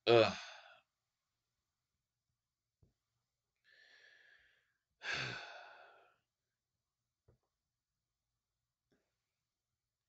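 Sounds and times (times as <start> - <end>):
man sighing heavily: 5.0 - 6.0.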